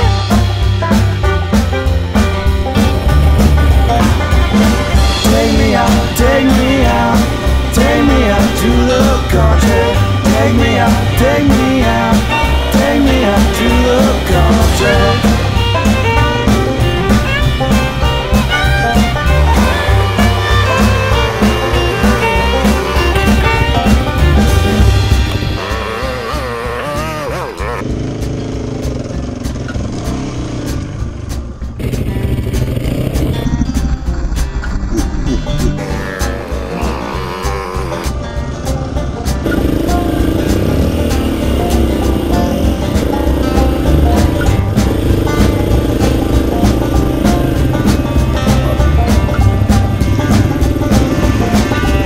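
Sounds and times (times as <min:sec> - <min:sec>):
motorcycle engine running: 0:00.0 - 0:52.0
music soundtrack: 0:00.0 - 0:52.0.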